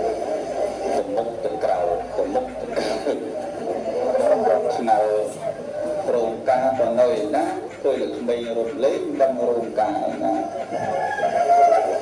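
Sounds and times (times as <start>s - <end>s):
man chanting through a microphone: 0.9s - 3.3s, 4.1s - 11.0s.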